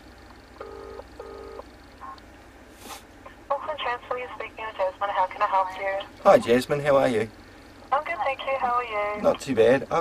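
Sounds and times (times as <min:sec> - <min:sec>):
telephone ringback tone: 0:00.6 - 0:01.6
brief hiss: 0:02.7 - 0:03.1.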